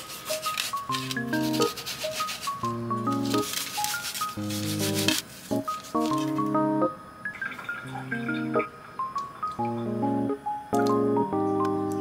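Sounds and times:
hands scraping salt on vegetable: 0.0 - 6.1
light melodic background music: 0.0 - 12.0.

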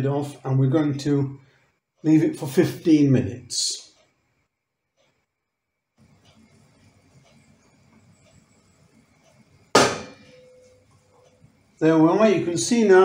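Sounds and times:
soup heating in a pot: 6.0 - 9.8
sharp metallic clang: 9.8 - 10.8.

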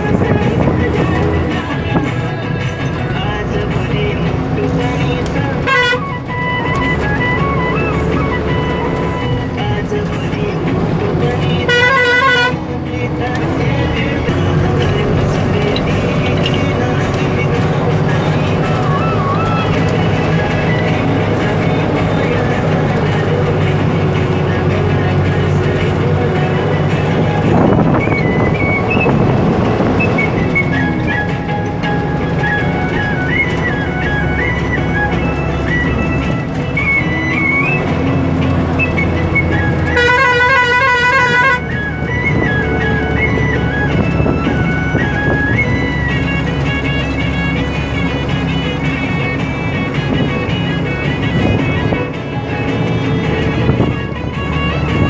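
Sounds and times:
music playing: 0.0 - 55.0
vehicle engine running: 0.0 - 55.0
horn: 5.7 - 6.2, 11.7 - 12.6, 39.9 - 41.6.

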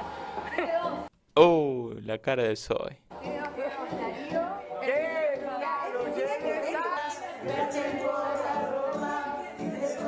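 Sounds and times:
crowd talking and singing: 3.1 - 10.0
party music: 3.1 - 10.0.

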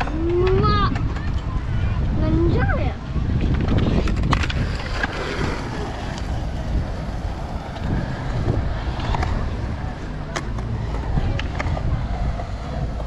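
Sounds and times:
skateboards clacking on ground: 0.0 - 1.8, 2.5 - 13.0
skateboard wheels rolling on concrete: 0.0 - 13.0
wind buffeting microphone: 0.0 - 13.0.

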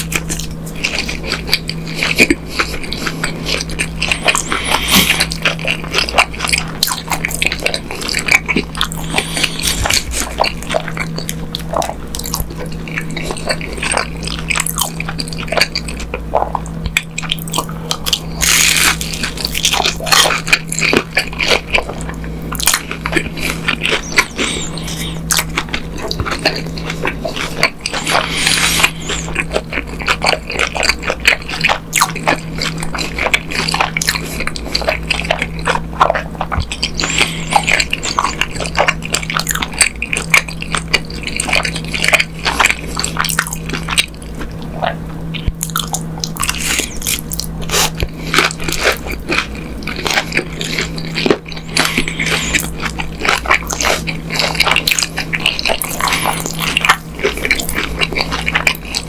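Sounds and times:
crunchy biting and chewing: 0.0 - 59.0
low hum: 0.0 - 59.0.

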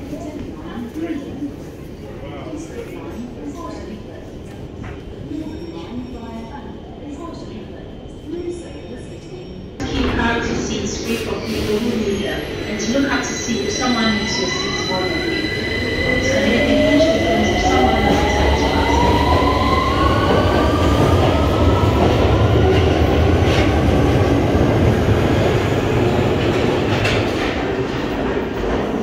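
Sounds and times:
train wheels rumbling on rails: 9.8 - 29.0.

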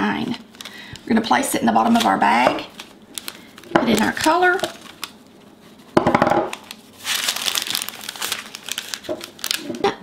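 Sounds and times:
parchment paper crinkling: 0.4 - 5.9, 6.5 - 10.0.

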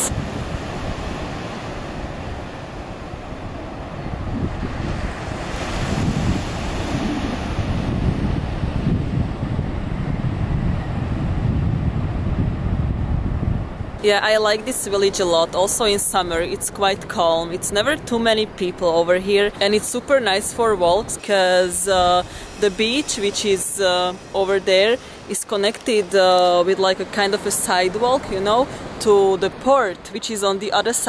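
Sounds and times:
sea surf breaking on beach: 0.0 - 30.0
wind rumble on microphone: 0.0 - 30.0.

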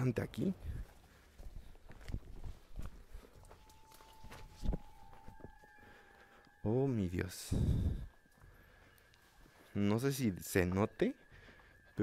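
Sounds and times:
twigs crackling: 0.9 - 7.3
faint steady high tone: 3.2 - 12.0.

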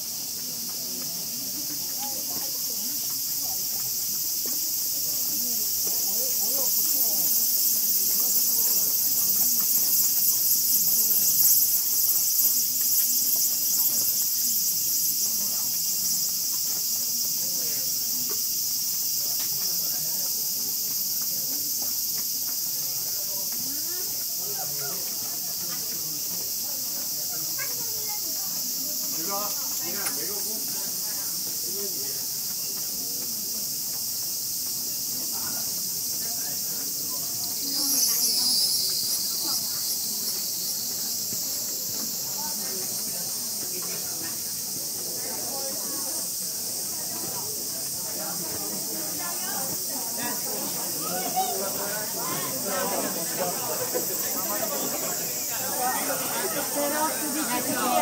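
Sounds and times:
faint voices: 0.0 - 58.0
insects singing: 0.0 - 58.0.

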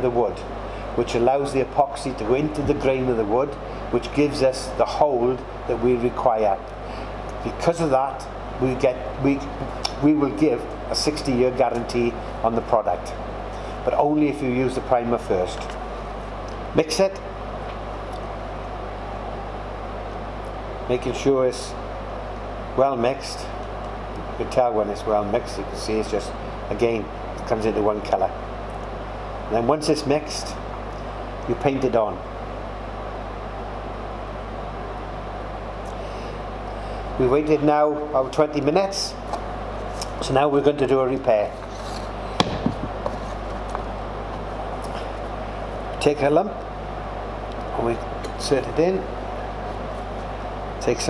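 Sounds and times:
room hum and hiss: 0.0 - 51.0
sharp knock on wood: 42.4 - 43.0.

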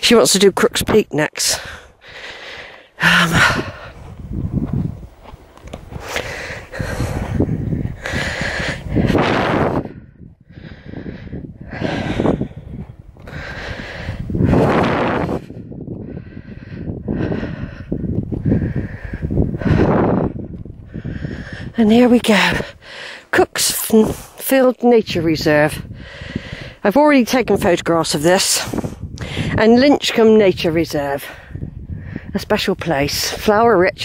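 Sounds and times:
heavy breathing: 1.5 - 4.3, 5.9 - 24.4, 25.8 - 26.8, 28.6 - 29.6.

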